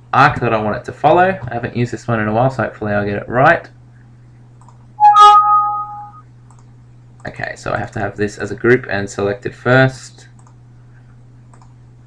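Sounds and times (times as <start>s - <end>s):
two-note warning chime: 5.0s - 6.2s.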